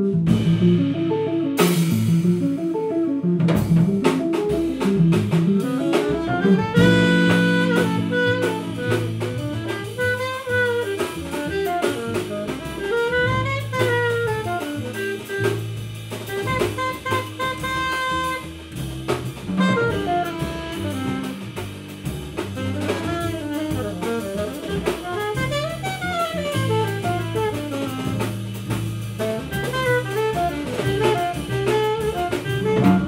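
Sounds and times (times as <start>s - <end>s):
drum kit with cymbals: 0.0s - 33.0s
walking double bass: 0.0s - 33.0s
alto saxophone playing quick lines: 4.1s - 33.0s.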